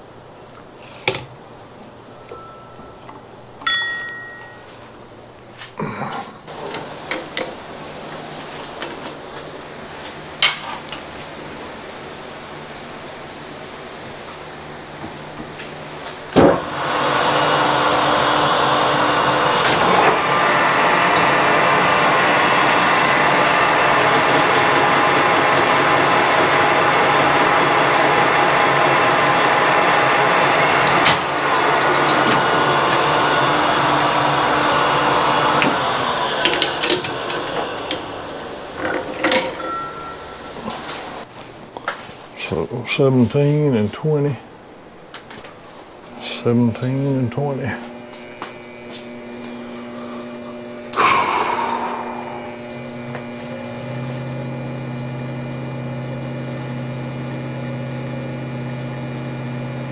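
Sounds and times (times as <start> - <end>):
lathe starting clunk: 15.6 - 41.2
metal lathe running with gear whine: 16.6 - 41.2, 46.2 - 59.9.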